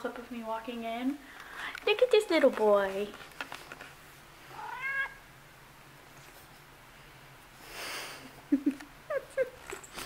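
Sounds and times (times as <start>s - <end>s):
cat meowing: 4.5s - 5.2s.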